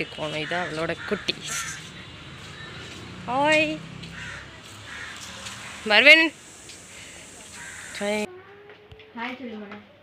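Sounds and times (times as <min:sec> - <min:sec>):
crow cawing: 0:00.4 - 0:02.0, 0:04.0 - 0:05.9, 0:06.9 - 0:08.3.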